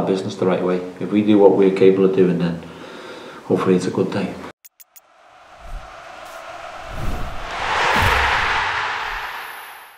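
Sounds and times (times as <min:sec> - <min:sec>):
whoosh: 0:05.0 - 0:09.9
deep booms: 0:06.6 - 0:09.9.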